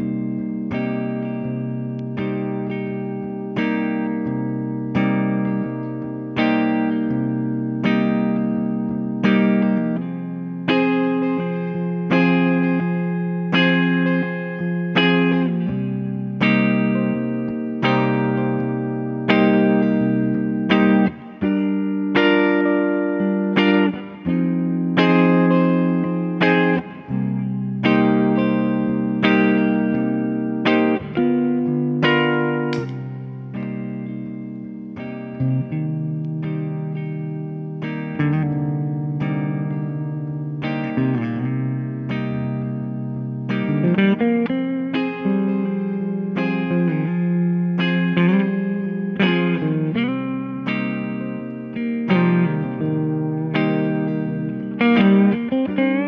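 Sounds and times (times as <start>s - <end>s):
electric guitar chords strummed: 0.0s - 56.0s.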